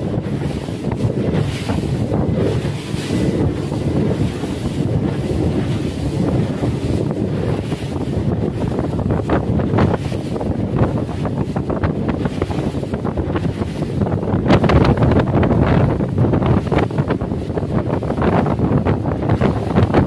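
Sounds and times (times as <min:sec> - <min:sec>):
boat engine rumble: 0:00.0 - 0:20.0
water rushing past hull: 0:00.0 - 0:20.0
wind buffeting microphone: 0:00.0 - 0:20.0.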